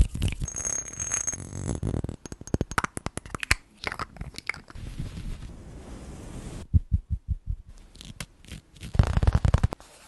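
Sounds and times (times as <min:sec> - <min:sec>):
close rustling at microphone: 0:04.7 - 0:06.7.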